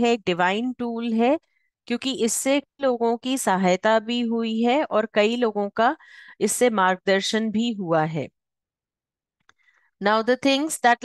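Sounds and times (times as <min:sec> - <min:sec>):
woman's voice: 0:00.0 - 0:08.4, 0:10.0 - 0:11.0.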